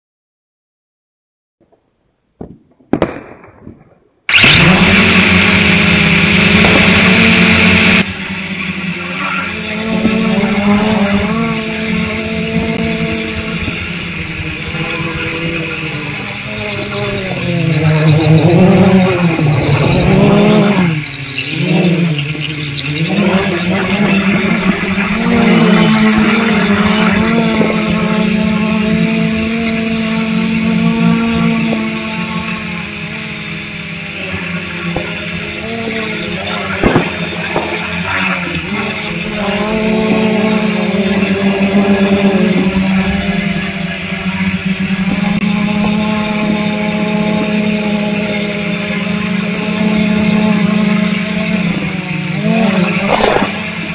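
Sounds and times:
quadcopter propellers whining: 4.3 - 53.9.

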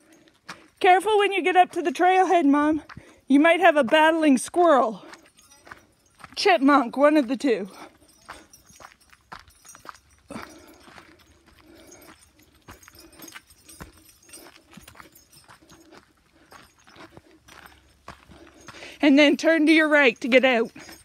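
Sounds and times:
footsteps on gravel trail: 0.0 - 21.0.

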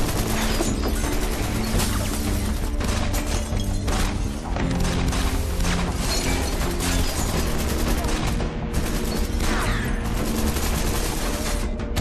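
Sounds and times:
background music: 0.0 - 12.0
rapid gunfire: 0.0 - 12.0.

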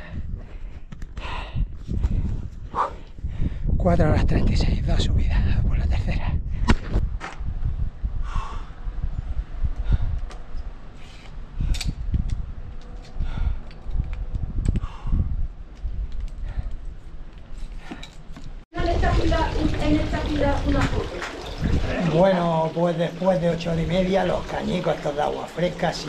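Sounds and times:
low rumbling wind: 0.0 - 26.0
trekking poles clicking: 10.1 - 14.9, 15.6 - 18.6
fountain water splashing into trough: 18.8 - 26.0.

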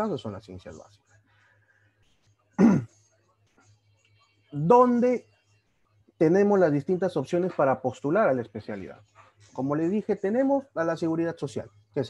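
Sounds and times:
man talking: 0.0 - 0.9, 4.6 - 5.2, 6.2 - 9.0, 9.6 - 11.7
man's short vocal sound: 2.6 - 2.9.

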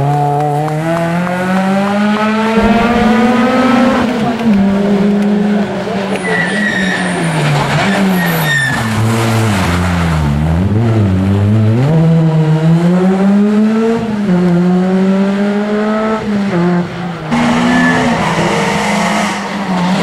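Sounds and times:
rally car engine revving: 0.0 - 20.0
tyre squeal: 6.2 - 8.9, 17.4 - 19.4.

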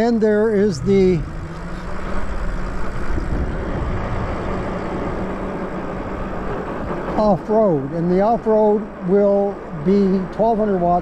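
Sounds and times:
wind rushing over microphone: 0.0 - 10.3.

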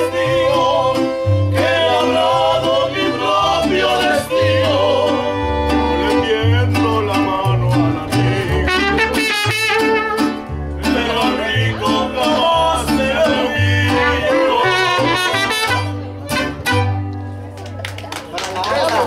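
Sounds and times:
man singing: 0.0 - 15.6
strummed guitar: 0.0 - 17.5
deep bass guitar notes: 0.0 - 17.6
violin: 2.8 - 6.8
trumpet: 8.6 - 10.4, 14.0 - 17.1.

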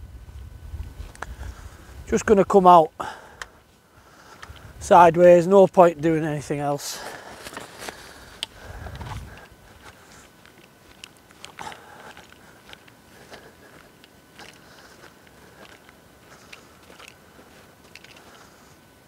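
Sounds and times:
footsteps through rough grass: 3.5 - 19.0
twigs crackling and snapping: 7.2 - 18.5.

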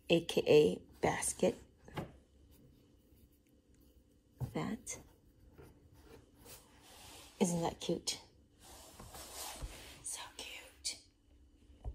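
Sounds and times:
person whispering: 10.0 - 11.1.

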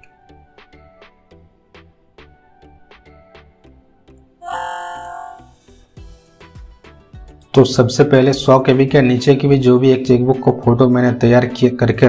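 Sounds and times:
background music with soft beat: 0.0 - 4.4, 5.0 - 12.0.

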